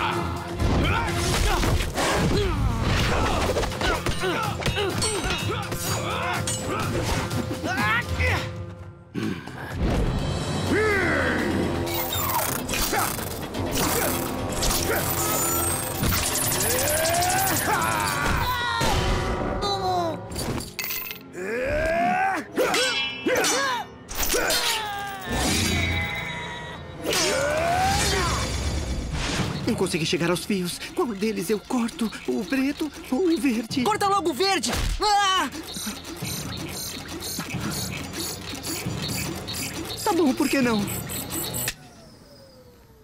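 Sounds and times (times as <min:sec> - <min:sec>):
dramatic action music: 0:00.0 - 0:41.7
sharp hits and metal clangs: 0:11.9 - 0:19.4, 0:22.6 - 0:26.2
rapid mechanical clicking: 0:30.1 - 0:41.8.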